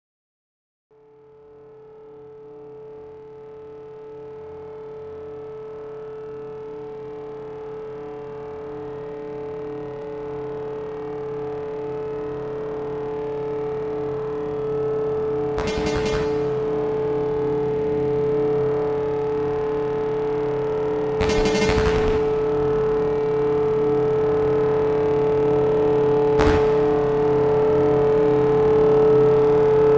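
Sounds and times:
electronic synthesizer drone: 1.0s - 29.9s
burst of noise: 15.6s - 17.0s, 21.2s - 22.8s, 26.4s - 27.3s.

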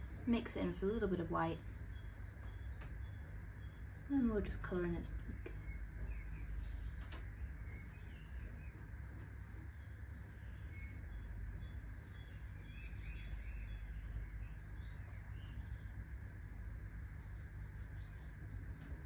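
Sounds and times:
birds chirping: 0.0s - 19.0s
low ambient rumble: 0.0s - 19.0s.

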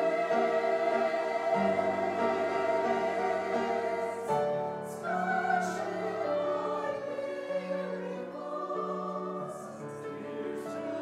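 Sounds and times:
choir singing in parts: 0.0s - 11.0s
piano accompaniment: 0.0s - 11.0s.

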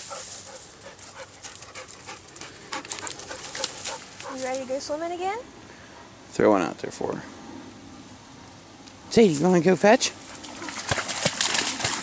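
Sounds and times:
water splashing: 10.3s - 12.0s.

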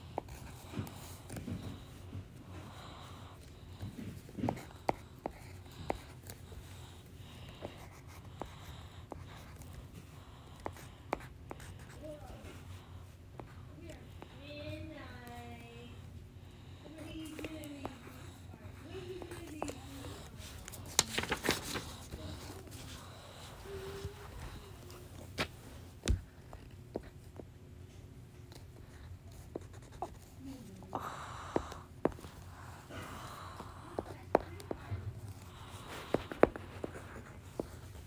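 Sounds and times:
crayon writing on paper: 0.0s - 15.6s, 16.8s - 27.5s, 28.4s - 38.0s.

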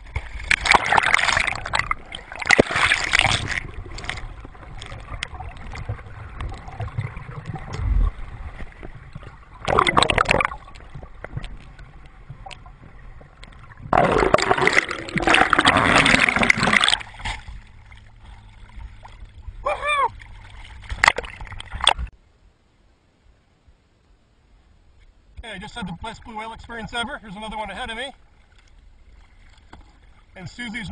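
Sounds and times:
water splashing and bubbling: 0.0s - 22.1s
muffled underwater gurgling: 0.6s - 17.0s.

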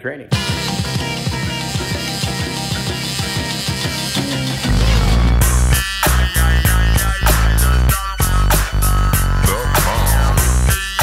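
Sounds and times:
heavy bass part: 0.3s - 10.8s
rock music: 0.3s - 11.0s
steady drum beat: 0.3s - 11.0s.

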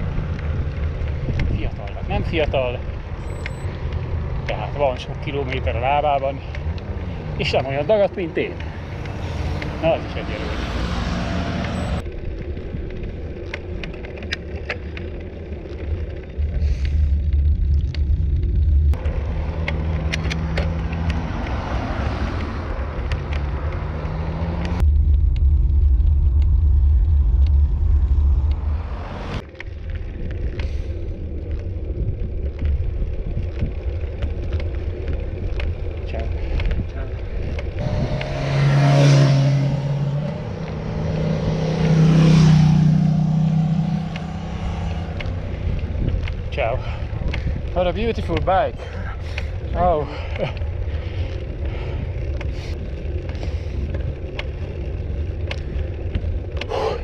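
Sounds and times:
wind buffeting microphone: 0.0s - 14.2s, 24.7s - 56.7s
motor vehicle passing: 0.0s - 57.0s.

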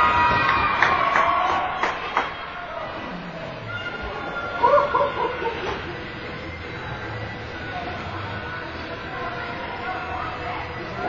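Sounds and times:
ice rink arena hum: 0.0s - 11.0s.

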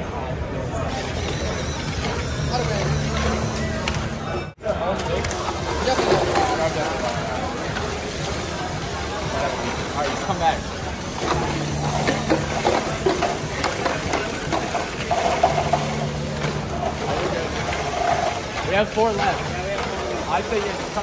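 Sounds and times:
chatter of voices: 0.0s - 21.0s
low motor hum: 11.0s - 21.0s.

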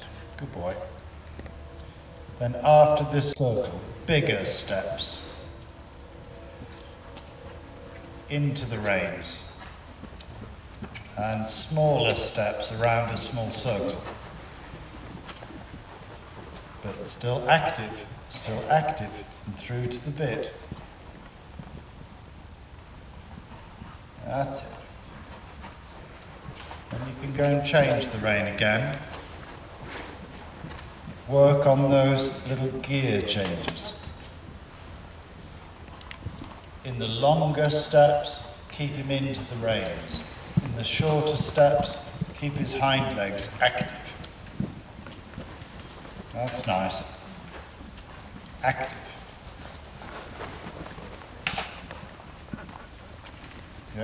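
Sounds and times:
horse hoofbeats on sand: 1.2s - 54.0s.

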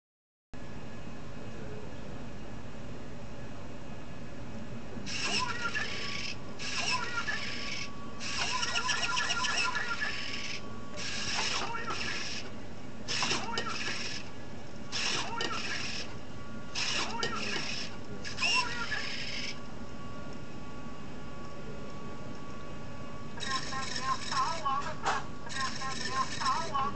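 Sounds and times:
tinny robot voice speaking: 5.1s - 12.5s, 13.1s - 14.3s, 15.0s - 16.1s, 16.8s - 19.6s, 23.4s - 26.9s.

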